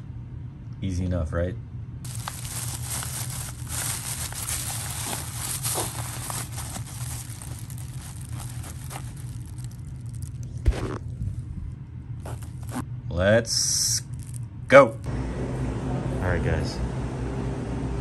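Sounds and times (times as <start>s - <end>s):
plastic bags crinkling: 2.1s - 10.6s, 12.2s - 12.8s
zipper being drawn shut: 12.2s - 12.8s.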